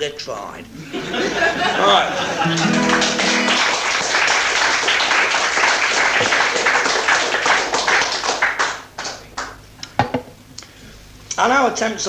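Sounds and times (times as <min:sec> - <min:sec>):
audience applause: 0:01.4 - 0:09.6.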